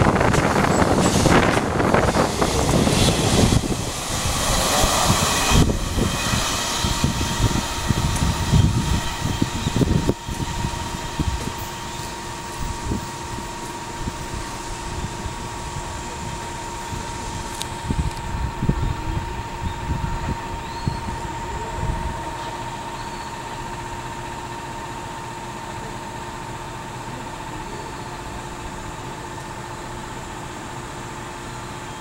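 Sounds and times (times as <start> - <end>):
wind buffeting microphone: 0.0 - 22.4
steady high tone: 0.0 - 26.1
freight train passing: 0.0 - 32.0.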